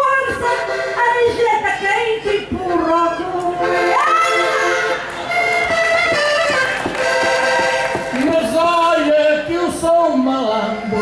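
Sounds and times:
button accordion melody: 0:00.0 - 0:11.0.

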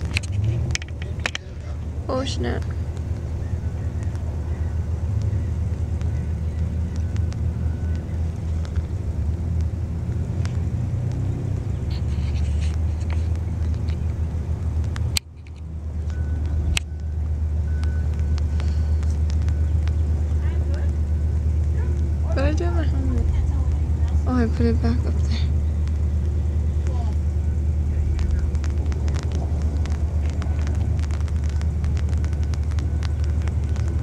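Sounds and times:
car engine rumbling: 0:00.0 - 0:34.0.

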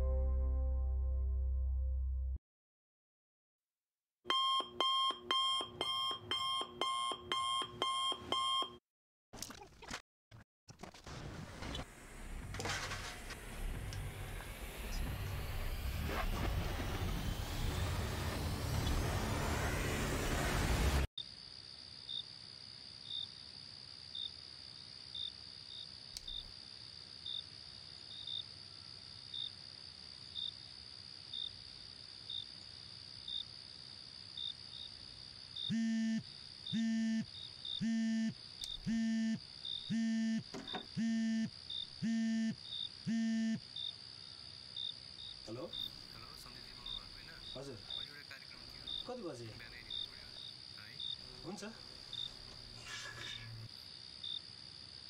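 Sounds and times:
rushing noise: 0:11.8 - 0:21.1
crickets chirping: 0:21.2 - 0:55.0
mobile phone ringing buzzing tone: 0:35.7 - 0:36.2, 0:36.8 - 0:43.6.

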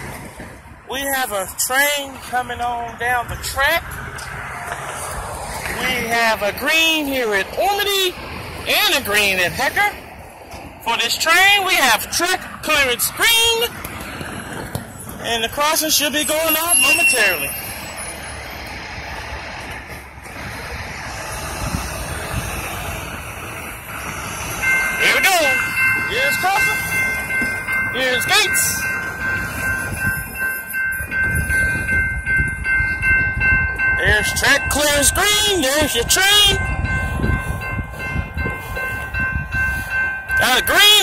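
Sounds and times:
freight train wheels rumbling: 0:00.0 - 0:41.0
road traffic noise: 0:00.0 - 0:41.0
railroad crossing bell ringing: 0:00.2 - 0:41.0
steady high tones: 0:14.9 - 0:18.9, 0:21.2 - 0:41.0.

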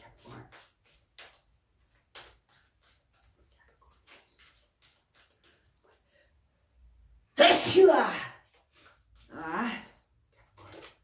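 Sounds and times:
woman sneezing: 0:07.4 - 0:08.2.

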